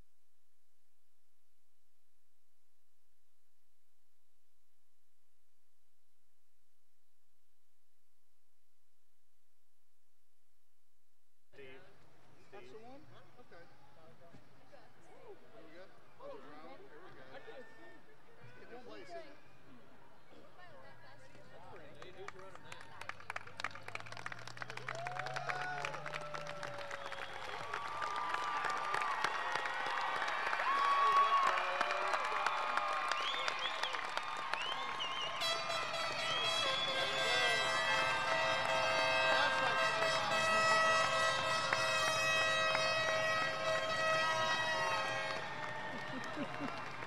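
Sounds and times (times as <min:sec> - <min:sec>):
crowd clapping and cheering: 0:21.6 - 0:47.0
whoops and whistles: 0:24.9 - 0:28.4, 0:33.0 - 0:37.3.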